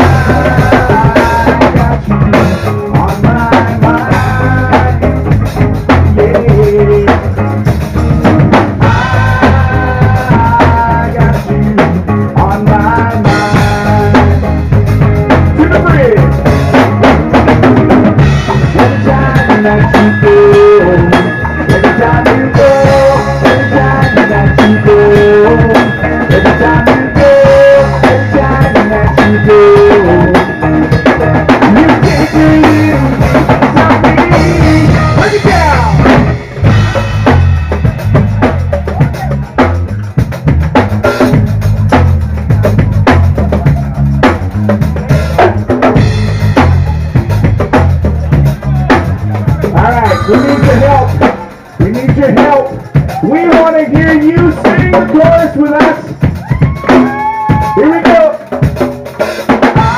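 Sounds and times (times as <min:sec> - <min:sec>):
drum kit beat: 0:00.0 - 0:59.9
live rock band playing: 0:00.0 - 0:59.9.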